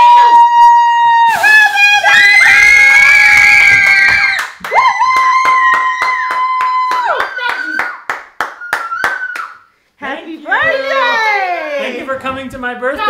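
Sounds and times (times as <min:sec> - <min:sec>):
people cheering and shouting: 0:00.0 - 0:07.8
rhythmic clapping: 0:03.8 - 0:09.6.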